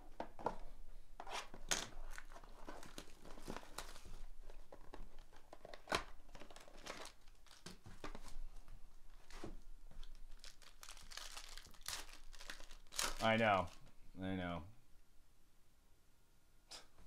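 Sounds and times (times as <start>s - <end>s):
foil wrapper crinkling and tearing: 5.2s - 8.1s, 10.0s - 13.8s.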